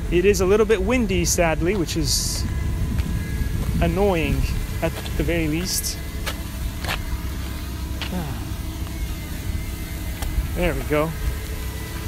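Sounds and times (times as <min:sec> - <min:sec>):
drone propellers whining: 0:00.0 - 0:12.0
wind buffeting microphone: 0:00.0 - 0:12.0.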